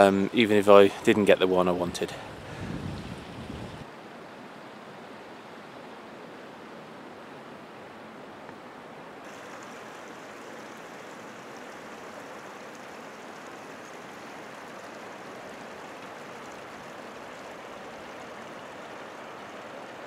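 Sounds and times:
wind rushing: 2.3 - 3.9
lake water rippling: 9.2 - 20.0.

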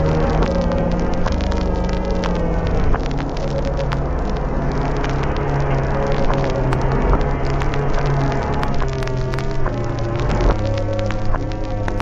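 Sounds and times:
buzzing electronic drone: 0.0 - 12.0
crackling clicks: 0.0 - 12.0.

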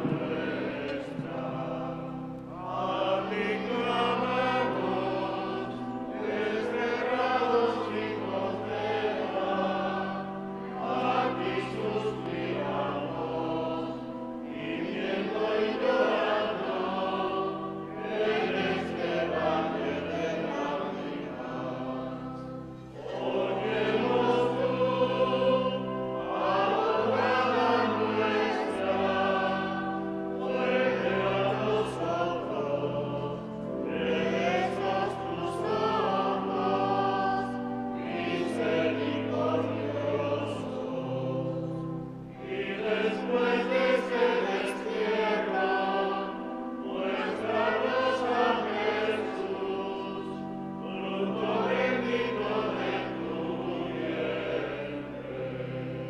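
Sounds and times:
choir singing a hymn: 0.0 - 56.0.

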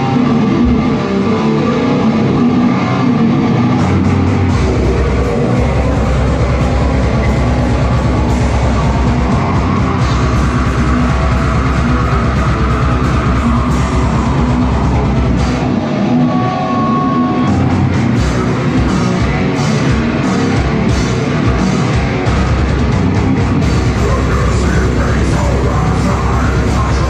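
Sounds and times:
drum kit: 0.0 - 16.2, 17.3 - 27.0
bass guitar: 0.0 - 27.0
distorted electric guitars: 0.0 - 27.0.

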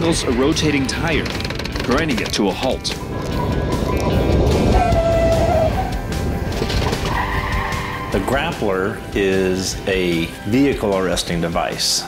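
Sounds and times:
vehicle and tyre noise: 0.0 - 8.5
background music: 0.0 - 12.0.

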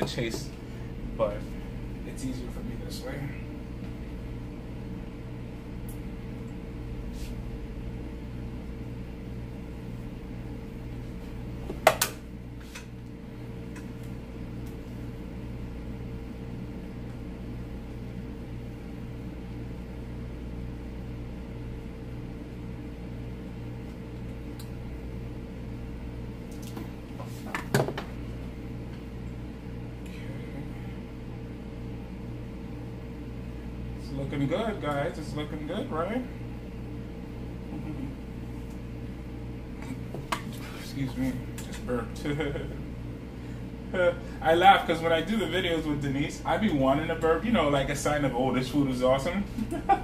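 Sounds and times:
person speaking: 0.0 - 3.6
low mechanical hum: 0.0 - 50.0.

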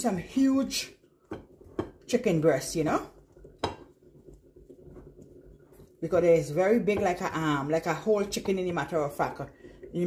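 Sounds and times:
soft rustling in flour: 0.0 - 10.0.

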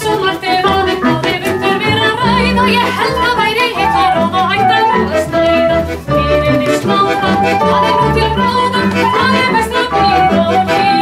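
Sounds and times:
acoustic folk ensemble: 0.0 - 11.0
woman singing: 0.0 - 11.0.

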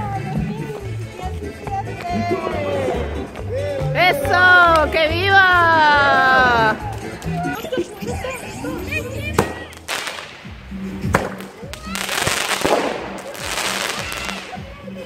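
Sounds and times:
music: 0.0 - 15.0
voices: 0.0 - 15.0
fireworks bangs: 9.4 - 14.8
fireworks hissing crackle: 9.4 - 15.0.

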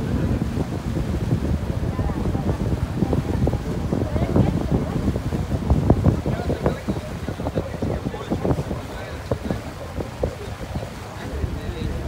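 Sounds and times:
boat engine rumble: 0.0 - 12.0
indistinct chatter of people: 0.0 - 12.0
wind buffeting microphone: 0.0 - 12.0.

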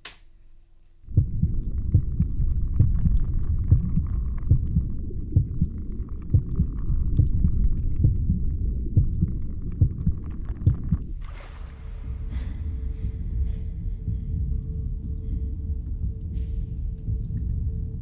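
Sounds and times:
soft irregular thumps: 0.9 - 18.0
low muffled rumbling: 1.0 - 18.0.

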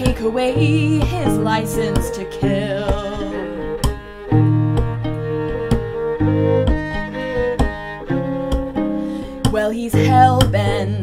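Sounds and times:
bowed violin: 0.0 - 11.0
plucked violin: 0.0 - 11.0.

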